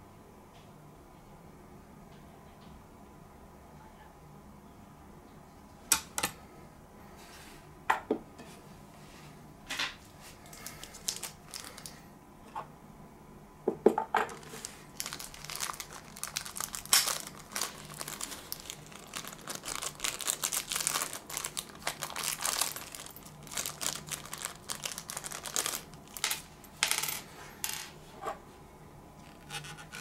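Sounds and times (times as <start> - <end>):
packaging crinkling: 10.4 - 12.0, 14.3 - 26.6.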